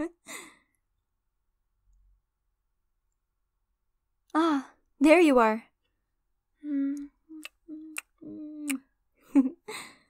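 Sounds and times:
woman sighing: 0:04.4 - 0:04.8.

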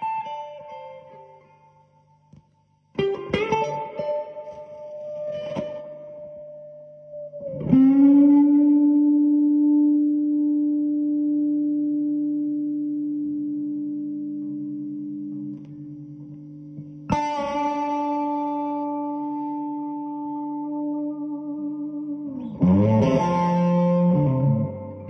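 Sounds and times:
electric guitar notes ringing: 0:00.0 - 0:25.0.

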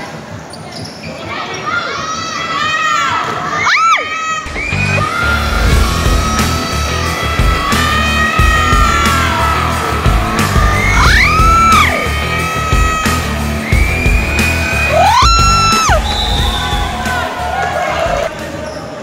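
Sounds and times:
rock music with lead guitar: 0:04.5 - 0:16.0.

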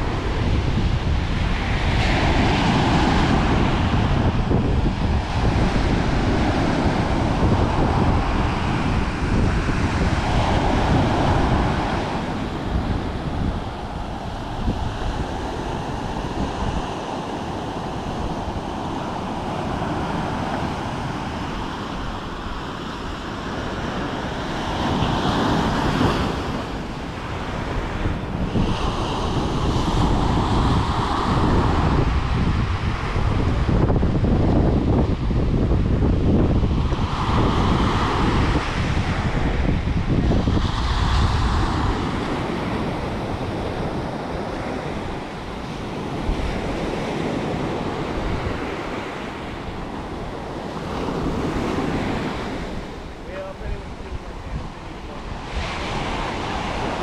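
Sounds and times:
ocean waves breaking on beach: 0:00.0 - 0:57.0
wind rumbling on microphone: 0:00.0 - 0:57.0.

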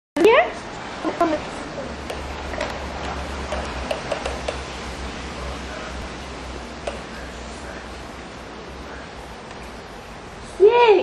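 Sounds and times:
plastic clicks and taps: 0:03.5 - 0:04.6, 0:06.8 - 0:07.0.

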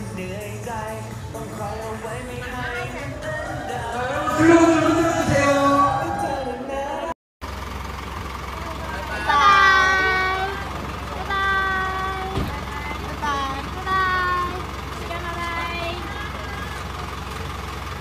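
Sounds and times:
large vehicle engine idling: 0:00.0 - 0:18.0
people shouting: 0:02.6 - 0:07.1, 0:08.8 - 0:12.1.

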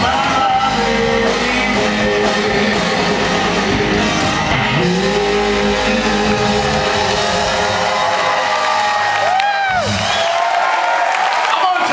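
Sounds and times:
rock band holding chord: 0:00.0 - 0:10.4
audience cheering: 0:04.1 - 0:11.9.

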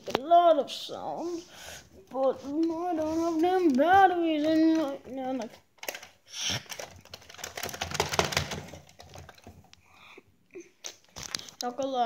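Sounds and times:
plastic toys clicking and rattling: 0:02.2 - 0:09.8.

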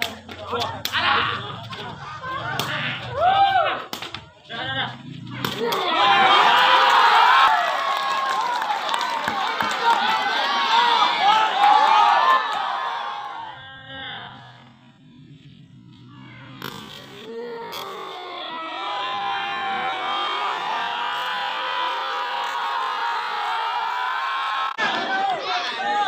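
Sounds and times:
crowd shouting and cheering: 0:00.0 - 0:14.7, 0:16.5 - 0:26.0.

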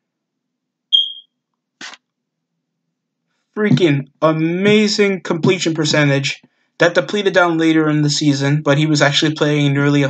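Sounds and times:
short high-pitched beep: 0:00.9 - 0:01.3.

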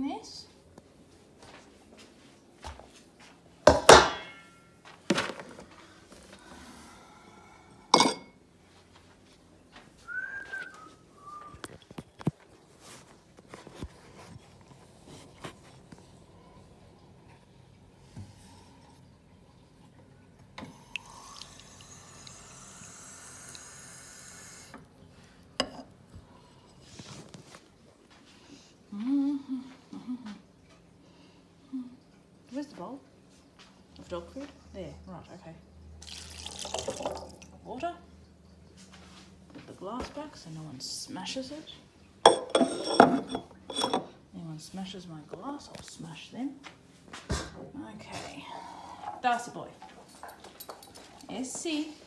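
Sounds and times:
dog bowl and glass clinking: 0:03.7 - 0:04.9, 0:07.9 - 0:08.4, 0:36.4 - 0:37.4, 0:42.2 - 0:44.2, 0:49.8 - 0:51.4
tap water running: 0:15.3 - 0:25.7, 0:36.0 - 0:37.9.

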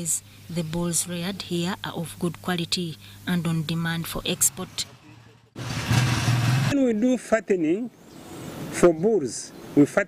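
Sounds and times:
engine humming: 0:00.7 - 0:06.8.

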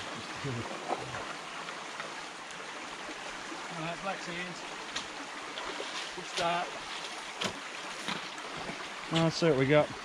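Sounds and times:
creek water running: 0:00.0 - 0:10.0.

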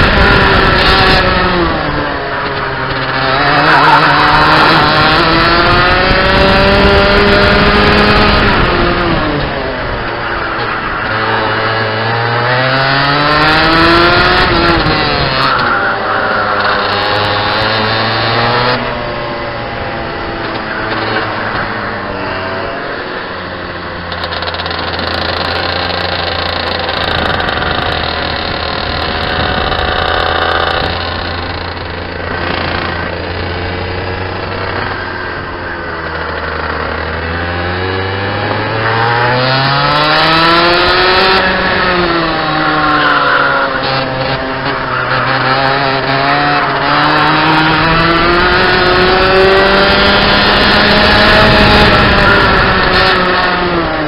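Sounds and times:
kart engine revving: 0:00.0 - 0:54.0.

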